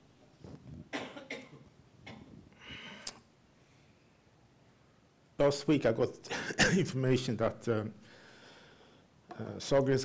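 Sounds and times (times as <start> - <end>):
person coughing: 0.9 - 2.3, 6.3 - 7.0.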